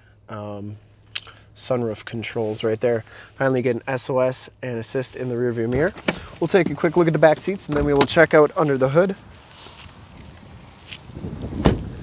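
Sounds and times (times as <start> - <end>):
rustling: 5.2 - 11.2
wind on microphone: 10.1 - 12.0.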